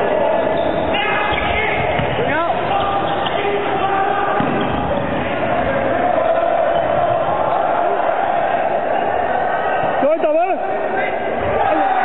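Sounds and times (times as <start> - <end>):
crowd noise: 0.0 - 12.0
players shouting: 0.0 - 12.0
volleyball being struck: 4.4 - 5.2.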